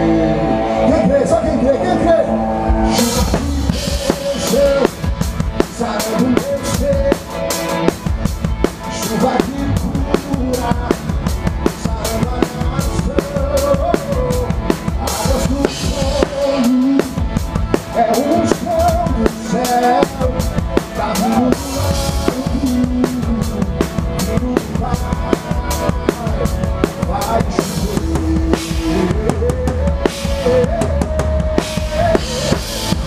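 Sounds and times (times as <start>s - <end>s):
band playing: 0.0s - 33.0s
drum kit groove: 2.6s - 33.0s.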